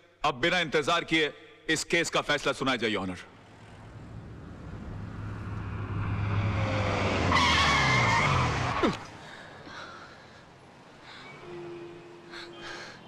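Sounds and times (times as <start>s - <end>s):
car engine approaching: 3.3s - 11.4s
tyres squealing: 6.6s - 9.8s.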